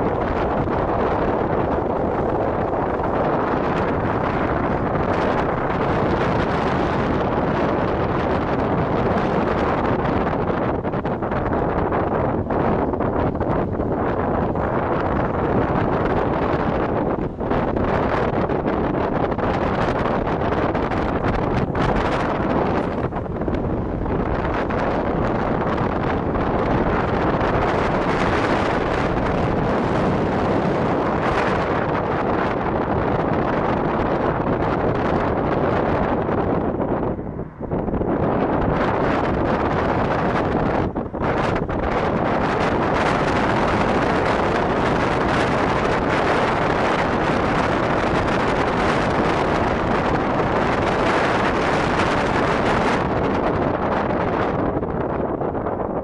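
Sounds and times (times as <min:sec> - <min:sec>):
road noise: 0:00.0 - 0:56.0
wind rushing over microphone: 0:00.0 - 0:56.0.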